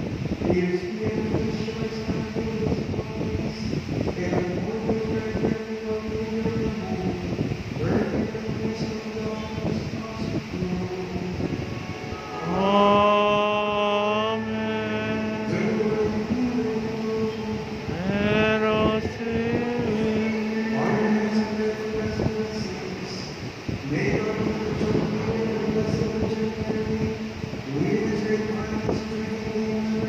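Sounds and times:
liturgical chant singing: 0:04.2 - 0:30.0
steady sustained tone: 0:05.7 - 0:30.0.

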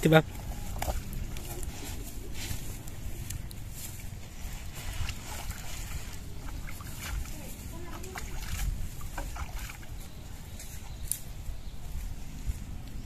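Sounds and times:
rustles and clicks on dry grass: 0:00.0 - 0:13.0
wind buffeting microphone: 0:00.0 - 0:13.0.

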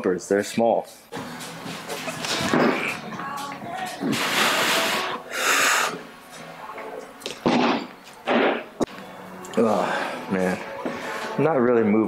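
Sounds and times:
forceful breathing: 0:04.0 - 0:06.1, 0:09.6 - 0:11.4.

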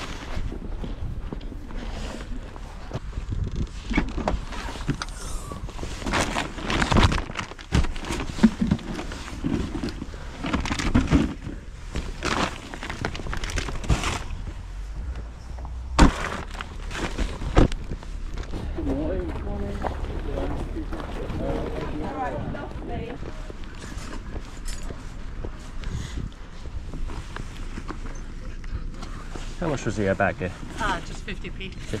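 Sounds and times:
wind rumble on microphone: 0:00.0 - 0:07.4, 0:16.8 - 0:28.0
items rustling in car boot: 0:00.0 - 0:32.0.

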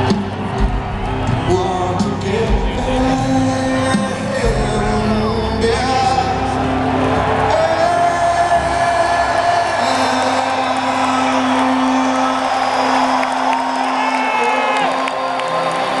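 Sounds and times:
crowd cheering and whooping: 0:00.0 - 0:16.0.

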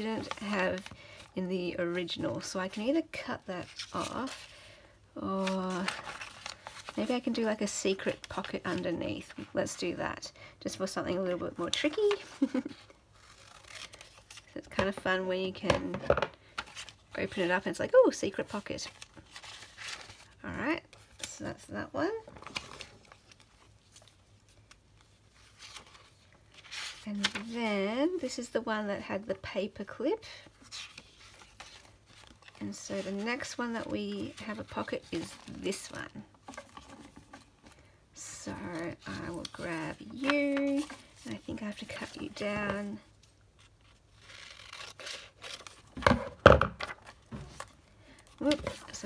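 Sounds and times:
paper pages rustling: 0:05.3 - 0:09.6, 0:11.6 - 0:15.1, 0:16.2 - 0:21.3, 0:22.2 - 0:27.6, 0:30.6 - 0:37.9, 0:38.5 - 0:46.2, 0:46.8 - 0:49.0.

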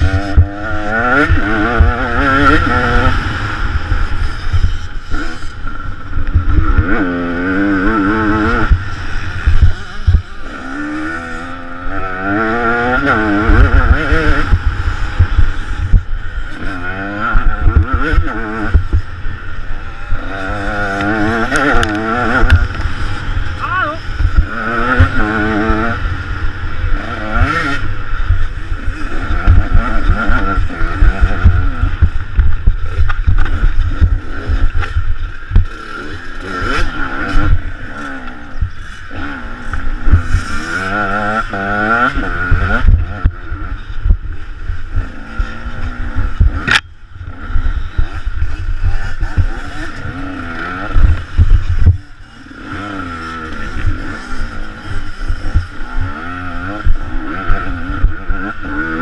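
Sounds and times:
wind on microphone: 0:00.0 - 0:35.7, 0:36.5 - 0:59.0
motorcycle engine revving: 0:00.0 - 0:59.0.

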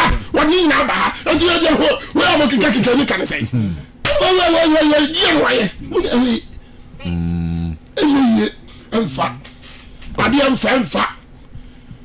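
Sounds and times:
men talking loudly: 0:00.4 - 0:06.5.

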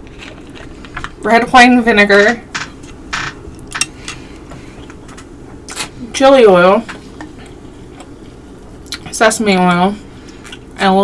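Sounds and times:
person chewing food: 0:00.0 - 0:01.2, 0:07.0 - 0:09.1, 0:10.2 - 0:10.8.

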